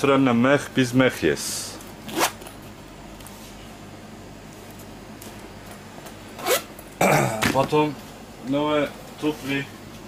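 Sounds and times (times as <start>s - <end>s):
boot zipper rasp: 2.0s - 2.4s, 6.4s - 6.7s.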